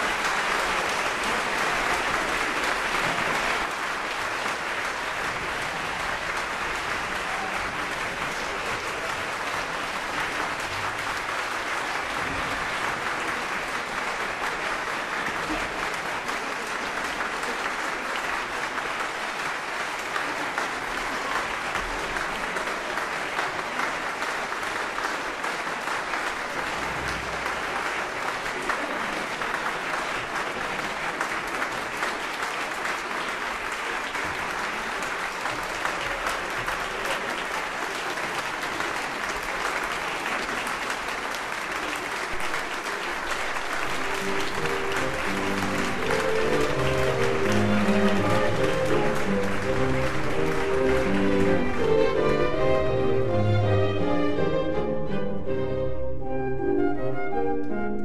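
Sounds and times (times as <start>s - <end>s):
audience applauding: 0.0s - 54.6s.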